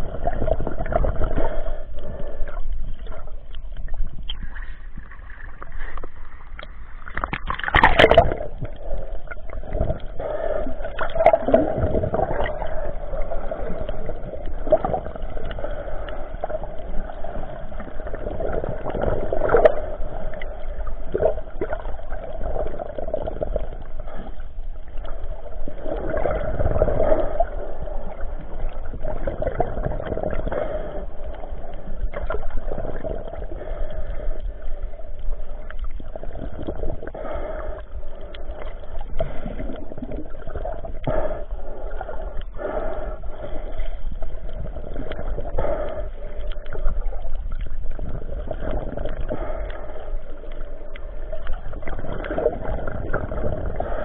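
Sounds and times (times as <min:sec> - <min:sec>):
water gurgling and sloshing: 0:00.0 - 0:54.0.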